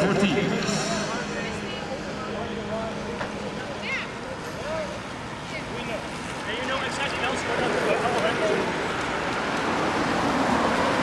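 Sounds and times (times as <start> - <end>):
people talking indistinctly: 0.0 - 8.8
street and traffic noise: 0.0 - 11.0.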